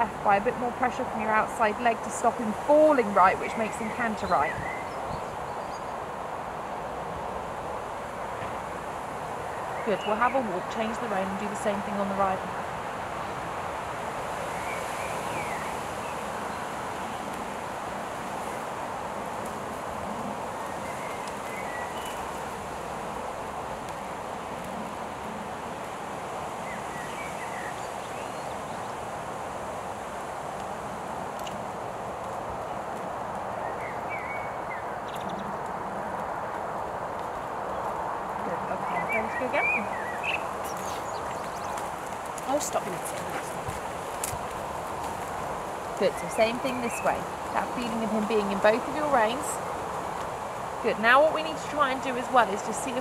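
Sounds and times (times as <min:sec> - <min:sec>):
rustling foliage: 0:00.0 - 0:53.0
steady outdoor hiss: 0:00.0 - 0:53.0
wind: 0:00.0 - 0:53.0
soft hoofbeats on arena surface: 0:30.6 - 0:53.0.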